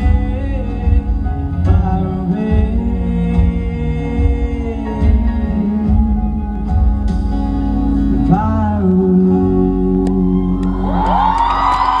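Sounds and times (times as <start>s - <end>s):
person singing: 0.0s - 7.2s, 8.0s - 12.0s
acoustic guitar and keyboard chord: 0.0s - 9.9s
audience screaming and cheering: 9.9s - 12.0s.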